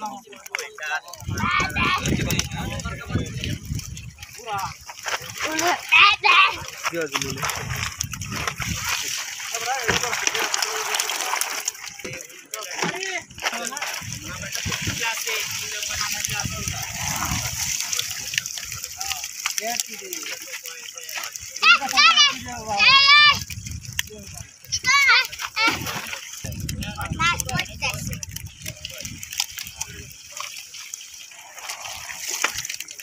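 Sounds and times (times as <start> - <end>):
people talking: 0.0 - 23.4, 24.0 - 30.8
water splashing off crates: 0.0 - 33.0.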